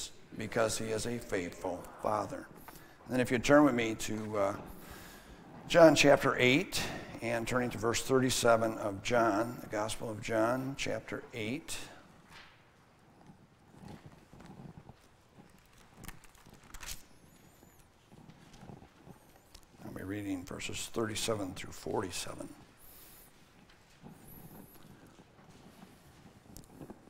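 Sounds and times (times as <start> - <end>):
book pages turning: 14.9 - 17.2.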